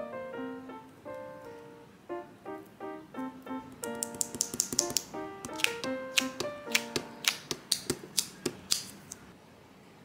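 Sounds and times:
light piano music: 0.0 - 8.7
eraser dabbing on paper: 4.1 - 9.2.

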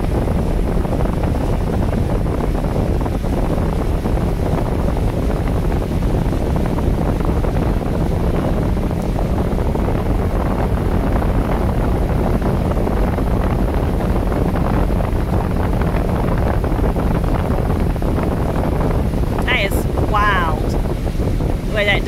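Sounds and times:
motorboat engine running: 0.0 - 22.0
wind noise on microphone: 0.0 - 22.0.

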